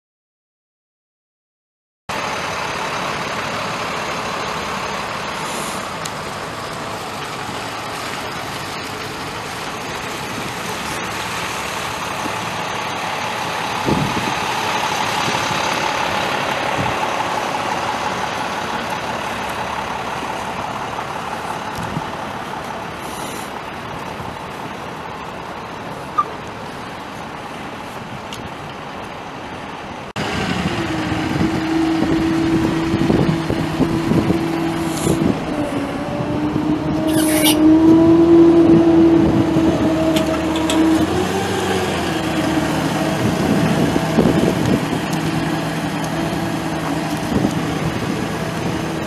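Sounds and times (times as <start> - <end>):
diesel truck engine idling: 2.1 - 37.8, 39.1 - 49.0.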